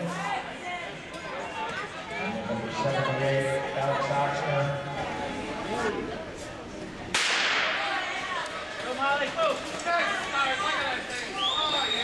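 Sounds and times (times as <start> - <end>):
starter's pistol crack echoing: 7.2 - 7.8.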